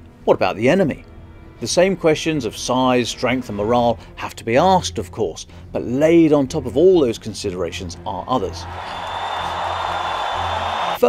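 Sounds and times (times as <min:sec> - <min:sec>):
background music: 0:00.0 - 0:11.0
large crowd cheering: 0:08.4 - 0:11.0.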